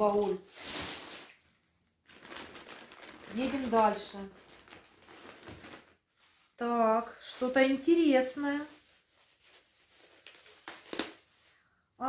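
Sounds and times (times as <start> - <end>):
packaging rustling: 0.0 - 6.6, 7.7 - 11.6.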